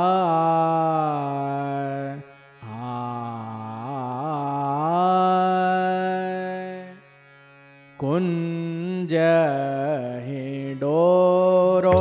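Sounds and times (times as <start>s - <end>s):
person singing devotional song: 0.0s - 7.1s, 8.0s - 12.0s.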